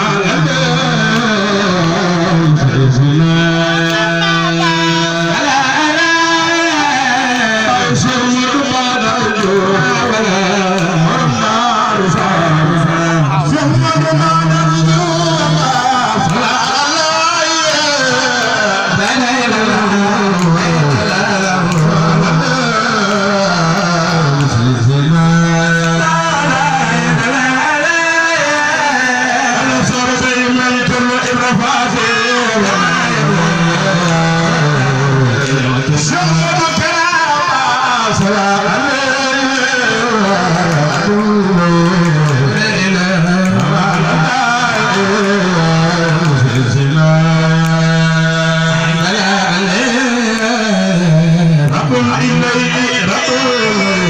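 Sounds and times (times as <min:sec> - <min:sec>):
man chanting into a microphone: 0:00.0 - 0:54.0
man singing long note: 0:00.0 - 0:54.0.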